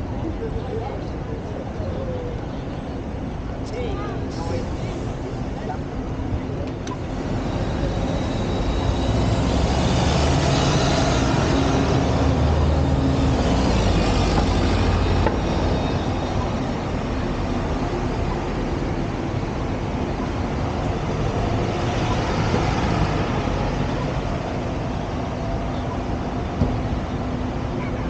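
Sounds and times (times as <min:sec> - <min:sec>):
traffic noise: 0:00.0 - 0:28.0
bus engine driving past: 0:06.9 - 0:28.0.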